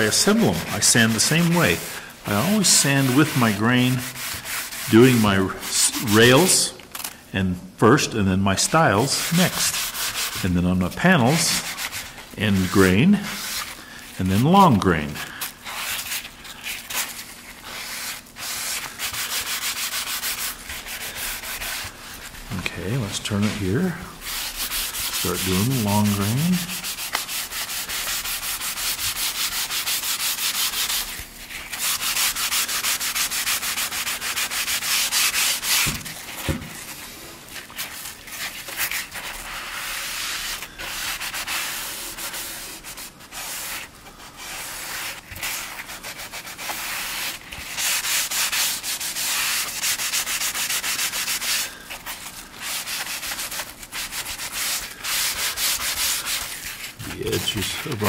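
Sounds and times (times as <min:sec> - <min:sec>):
sanding sponge rubbing wood: 0:00.0 - 0:06.8, 0:08.6 - 0:36.5, 0:37.5 - 0:58.0.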